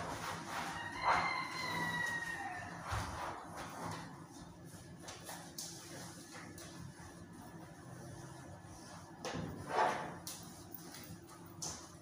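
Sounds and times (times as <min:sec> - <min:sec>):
cloth rubbing on glass: 0:00.0 - 0:11.0.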